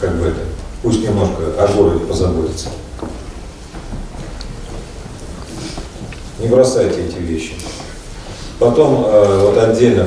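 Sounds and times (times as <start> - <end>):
low background room rumble: 0.0 - 10.0.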